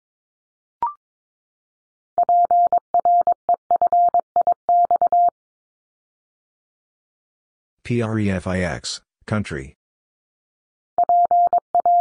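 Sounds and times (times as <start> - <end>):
morse code beeps: 2.2 - 5.3, 11.0 - 12.0.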